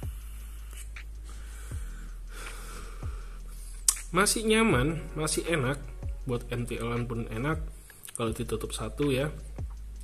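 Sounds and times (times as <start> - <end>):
low steady hum: 0.0 - 10.0
sharp click: 3.9 - 4.2.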